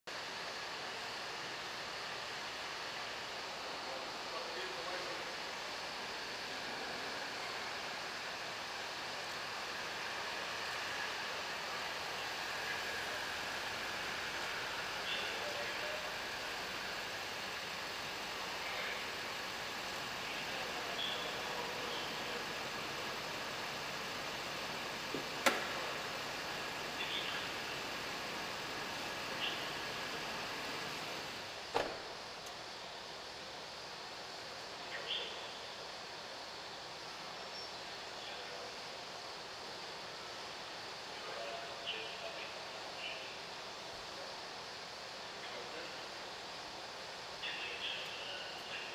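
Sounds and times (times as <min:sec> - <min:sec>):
steady hum in garage: 0:00.1 - 0:48.9.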